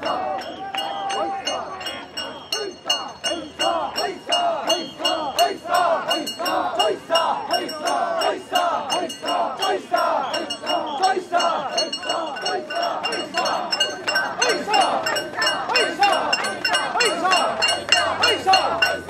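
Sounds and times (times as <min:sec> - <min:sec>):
people chanting rhythmic shouts: 0:00.0 - 0:19.0.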